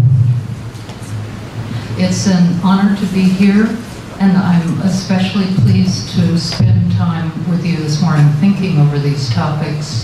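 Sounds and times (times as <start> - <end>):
microphone handling rumble: 0.0 - 1.3.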